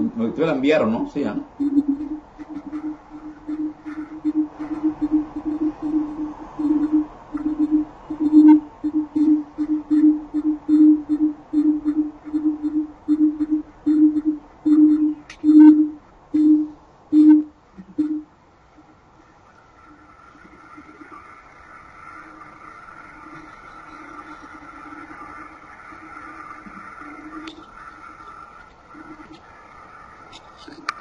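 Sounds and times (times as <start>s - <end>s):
low pulsing tone: 1.5s - 18.3s.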